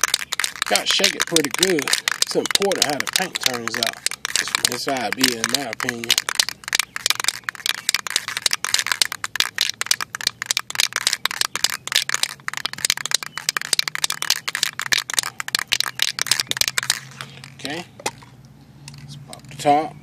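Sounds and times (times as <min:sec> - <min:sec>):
spray can rattling when shaken: 0:00.0 - 0:18.2.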